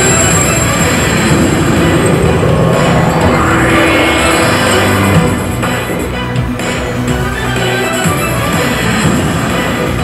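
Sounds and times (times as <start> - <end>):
rushing sound effect: 0.0 - 6.4
arcade machine music: 0.0 - 10.0.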